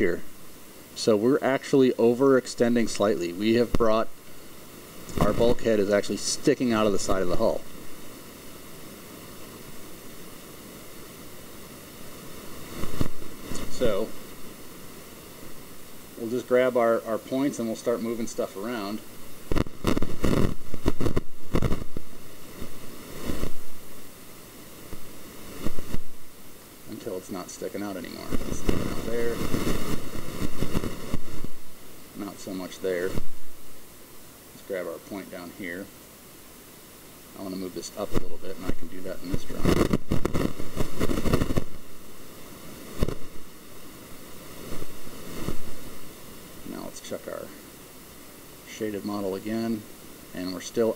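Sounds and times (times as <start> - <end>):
microphone hiss: 0.0 - 50.9.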